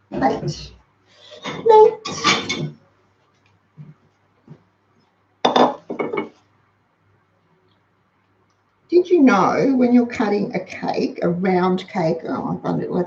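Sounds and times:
metal utensils clattering on dish: 0:01.4 - 0:02.7.

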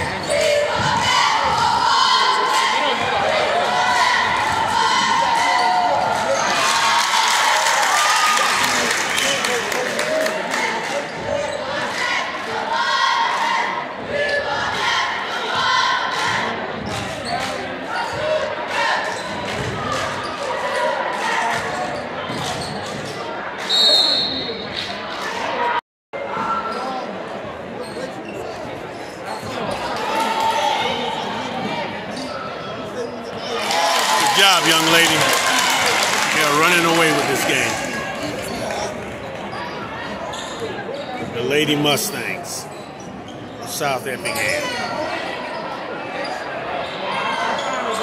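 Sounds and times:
voices echoing: 0:29.4 - 0:48.0.

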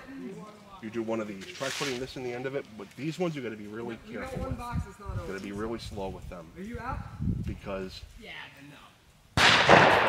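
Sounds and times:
gunshot with echoing tail: 0:09.4 - 0:10.0.

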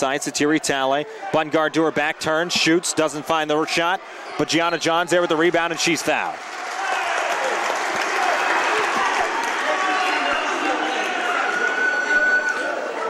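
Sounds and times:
crowd voices calling out: 0:00.0 - 0:13.0
crowd clapping: 0:06.1 - 0:10.8.

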